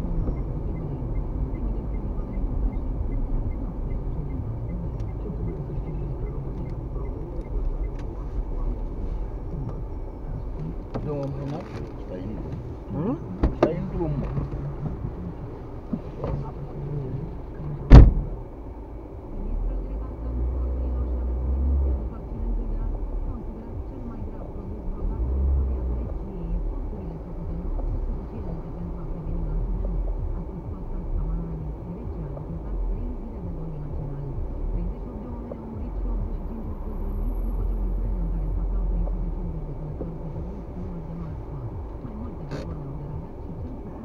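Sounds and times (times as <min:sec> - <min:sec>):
car engine and road rumble: 0:00.0 - 0:44.0.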